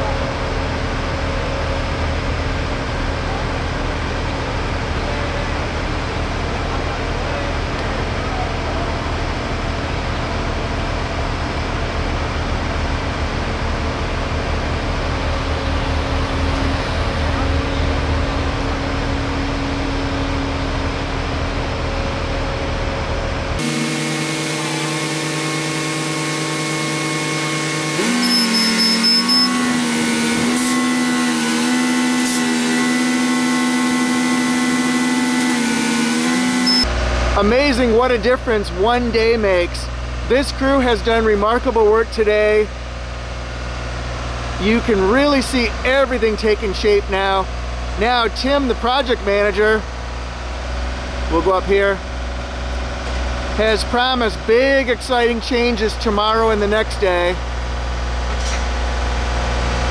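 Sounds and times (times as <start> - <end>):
heavy machinery diesel engine rumble: 0.0 - 26.2, 36.8 - 59.9.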